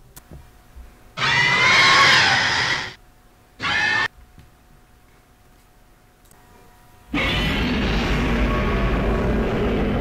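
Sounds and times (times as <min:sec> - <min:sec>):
screeching monster cry: 0:01.2 - 0:03.0, 0:03.6 - 0:04.1, 0:07.1 - 0:10.0.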